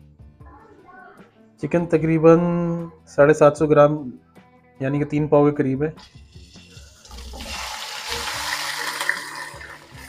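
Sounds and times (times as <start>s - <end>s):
chicken sizzling in hot oil: 6.0s - 10.0s.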